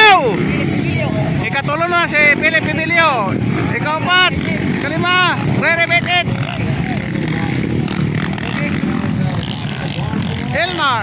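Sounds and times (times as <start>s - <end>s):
dirt bike engines revving: 0.0s - 11.0s.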